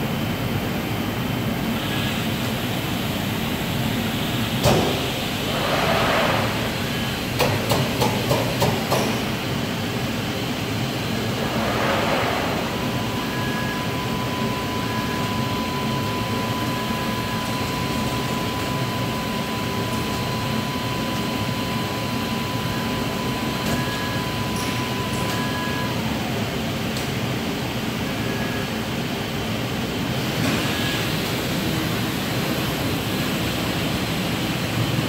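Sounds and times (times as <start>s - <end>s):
printer mechanical hum: 0.0s - 35.0s
rush of air: 5.5s - 6.9s, 11.1s - 14.3s
thin steady whine: 9.8s - 26.0s.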